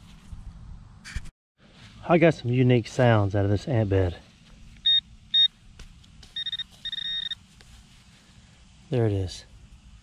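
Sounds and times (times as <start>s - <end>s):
metal detector beeping: 4.8s - 5.5s, 6.3s - 7.4s.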